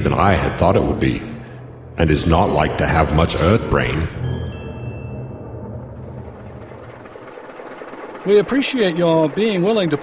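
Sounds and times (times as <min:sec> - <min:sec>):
thin high steady tone: 0:04.3 - 0:07.1.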